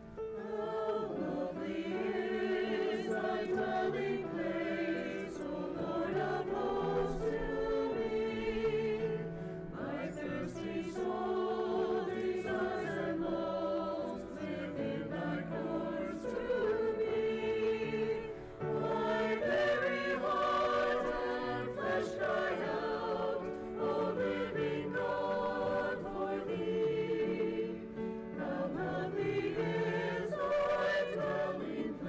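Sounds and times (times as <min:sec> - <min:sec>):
choir singing: 0:00.0 - 0:32.0.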